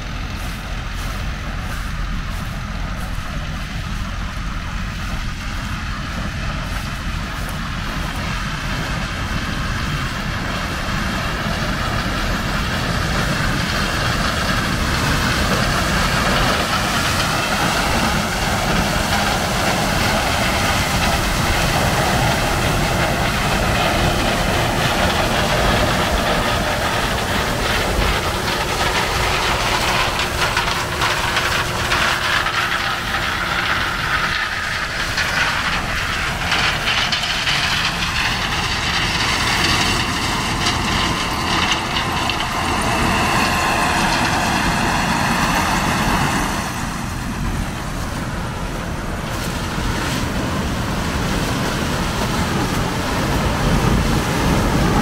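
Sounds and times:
combine harvester running: 0.0 - 55.0.

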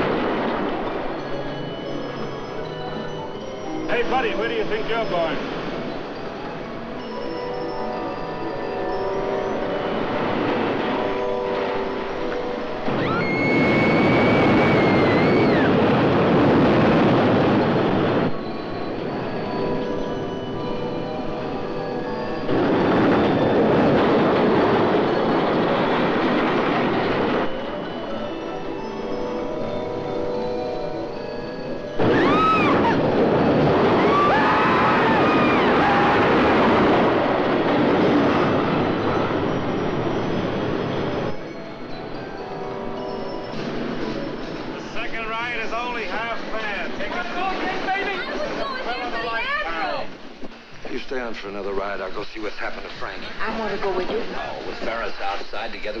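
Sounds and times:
roller coaster rumbling on wooden track: 0.0 - 3.2, 8.2 - 56.0
riders screaming: 12.9 - 15.9, 32.0 - 37.3.

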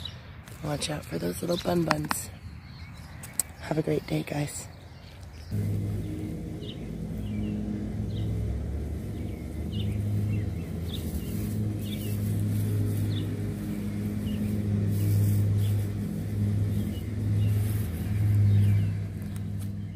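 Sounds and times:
bird chirps: 2.3 - 19.9
motor humming: 5.5 - 19.9.

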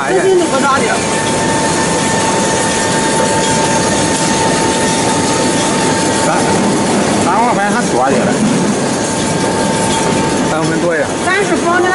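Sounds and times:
dough machine running with whine: 0.0 - 11.9.

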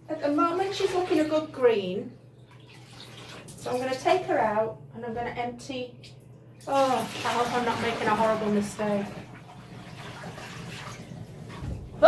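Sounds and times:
water sloshing and dripping in bucket: 0.2 - 4.4, 6.0 - 12.0.

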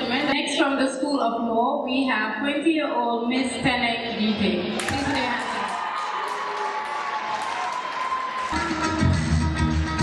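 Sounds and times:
audience applauding: 4.8 - 9.4
music with bass beat and guitar: 8.6 - 10.0.

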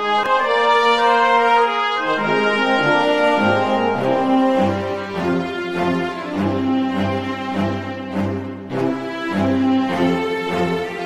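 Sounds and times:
brass playing sustained chords: 0.0 - 11.0.

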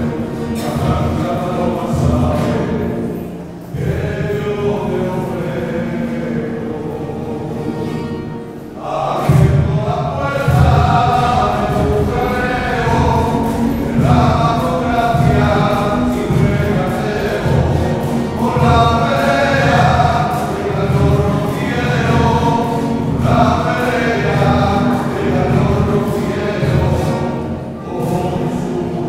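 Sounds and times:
choir singing a hymn: 0.0 - 29.0.

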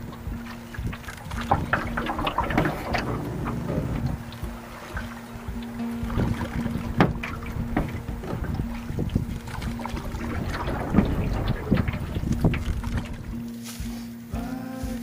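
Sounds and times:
knocks against canoe hull: 0.0 - 13.4
wind on microphone: 0.0 - 13.5
paddle strokes splashing: 0.0 - 14.0
background music held note: 0.0 - 15.0.

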